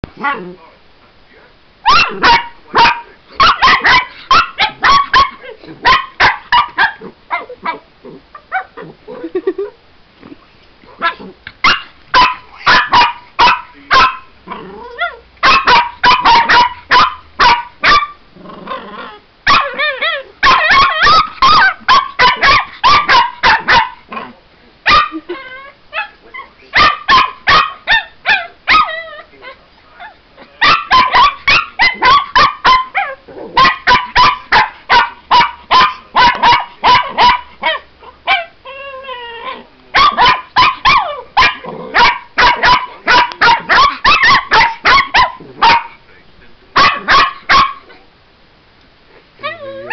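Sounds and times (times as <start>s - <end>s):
puppy barking: 1.8s - 7.8s, 11.0s - 14.3s, 14.9s - 18.2s, 19.5s - 24.0s, 24.9s - 25.3s, 25.9s - 29.1s, 30.0s - 38.5s, 39.9s - 46.0s, 46.8s - 48.0s.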